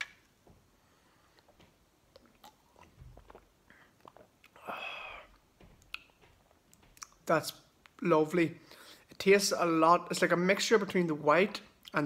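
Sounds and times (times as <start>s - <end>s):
soft mouth clicks: 2.1s - 6.2s, 7.0s - 7.2s.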